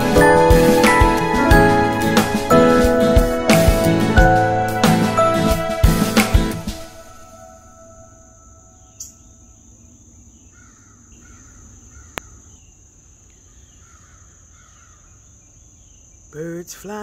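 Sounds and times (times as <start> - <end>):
distant bird calls: 8.2 - 16.3.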